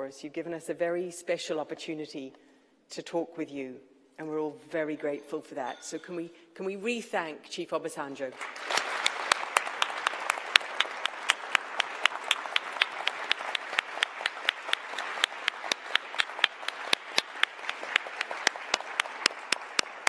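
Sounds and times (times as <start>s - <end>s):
audience applauding: 8.4s - 20.0s.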